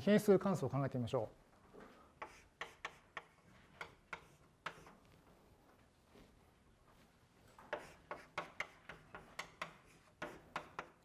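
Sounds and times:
chalk tapping on blackboard: 0:02.1 - 0:05.2, 0:07.6 - 0:11.0.

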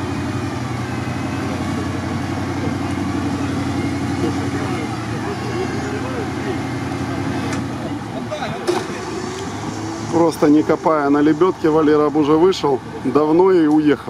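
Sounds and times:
car engine running at low revs: 0:00.0 - 0:14.0
faint murmur of voices: 0:00.9 - 0:14.0.

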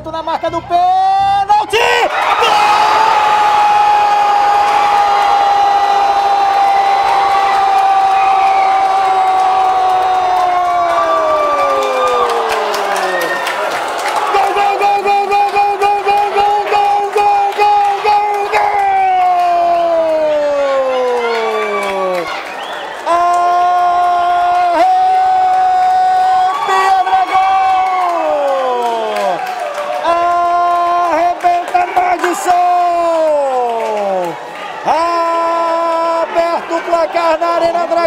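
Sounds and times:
commentator's drawn-out goal cry: 0:14.2 - 0:22.4.

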